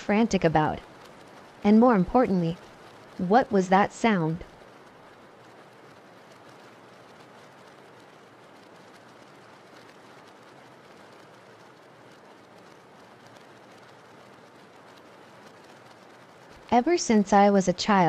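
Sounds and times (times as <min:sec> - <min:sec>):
faint steady rain: 0:00.0 - 0:18.0.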